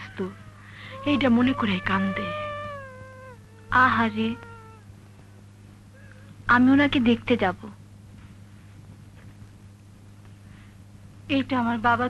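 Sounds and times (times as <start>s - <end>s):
woman's long high-pitched call: 0.0s - 4.8s.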